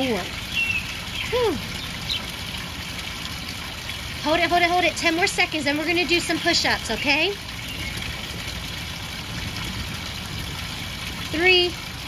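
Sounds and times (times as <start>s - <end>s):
water pouring in fountain: 0.0s - 12.0s.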